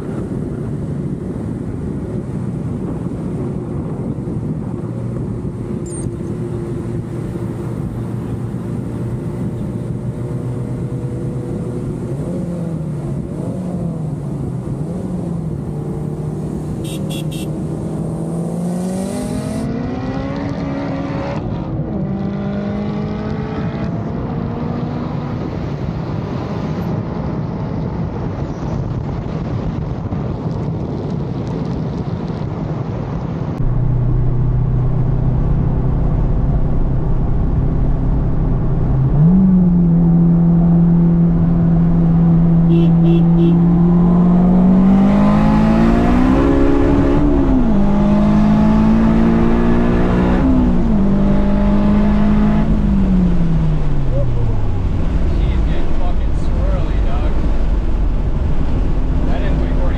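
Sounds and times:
road noise: 0.0s - 59.9s
car engine revving from inside cabin: 33.6s - 53.4s.

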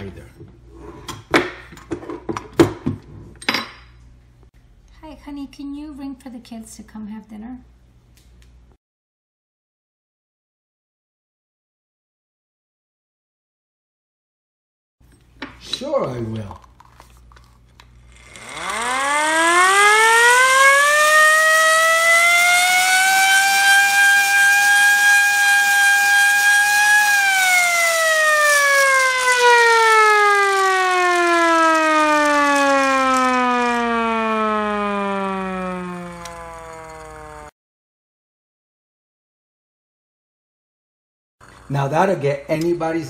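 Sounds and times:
hand-cranked air raid siren wailing: 18.2s - 37.5s.

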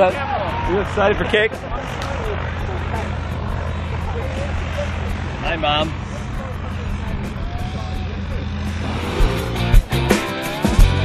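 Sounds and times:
propeller aircraft engine drone: 0.0s - 11.0s.

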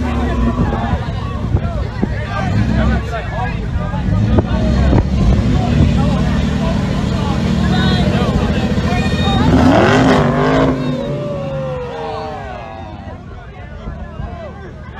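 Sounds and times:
people's voices: 0.0s - 14.9s
car engine revving under load: 4.0s - 12.5s.

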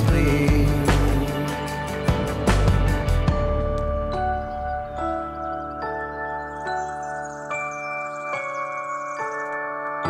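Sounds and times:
instrumental music sustained notes: 0.0s - 10.0s.

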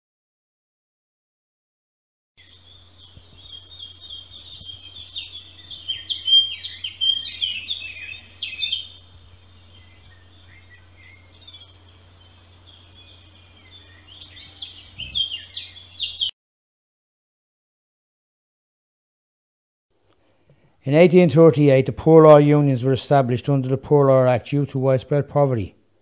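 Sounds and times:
low steady hum: 2.4s - 16.3s
songbird singing: 2.4s - 16.4s.

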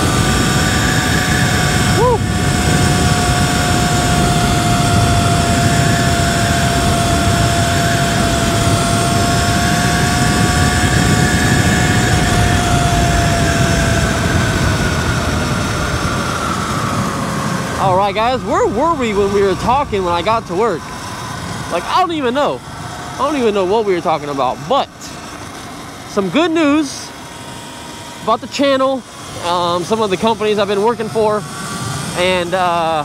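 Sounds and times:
electric motor whine: 0.0s - 33.0s
wind rush over microphone: 0.0s - 33.0s.

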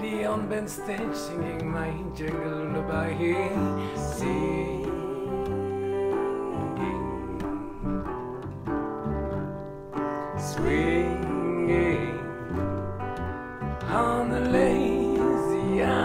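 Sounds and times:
resonator guitar: 0.0s - 16.0s
ukulele bass: 0.0s - 16.0s.

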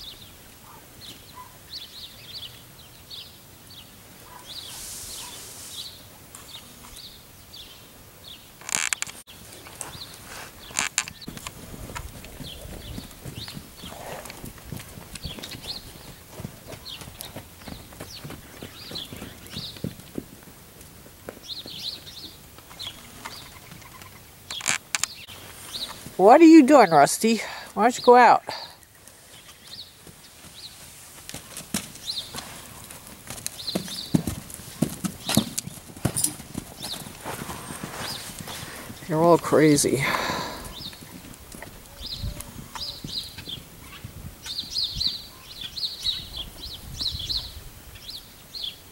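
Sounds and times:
small birds chirping: 0.0s - 20.2s, 21.4s - 48.9s
footfalls on dry dirt: 9.8s - 22.3s, 29.3s - 39.0s.

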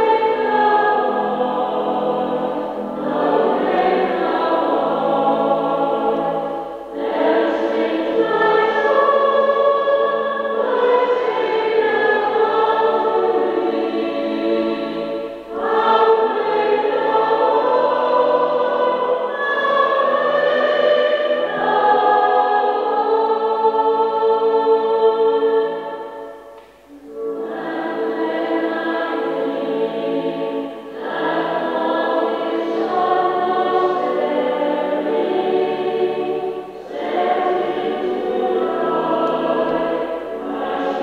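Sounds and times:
choir singing: 0.0s - 41.0s.

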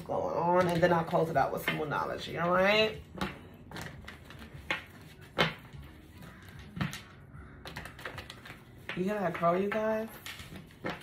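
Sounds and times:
cards rustling while shuffled: 0.2s - 11.0s
cards clacking together: 3.1s - 11.0s.

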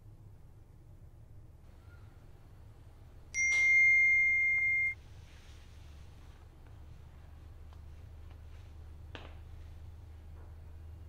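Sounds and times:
high-pitched electronic beep: 3.4s - 5.0s.

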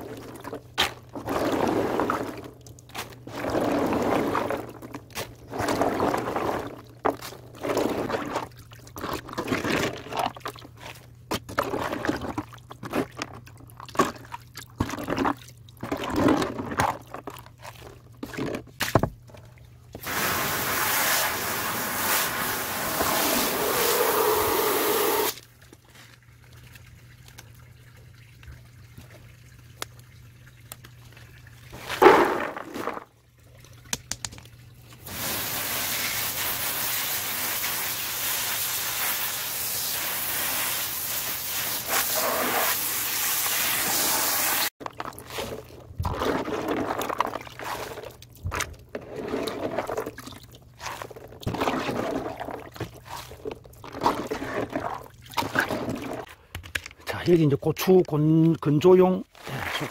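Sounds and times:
pouring water: 0.0s - 10.8s, 20.0s - 56.3s
water sloshing in plastic tub: 0.0s - 20.1s, 25.4s - 35.1s, 44.8s - 59.9s
garden hose spraying: 20.0s - 25.4s, 35.0s - 44.7s.

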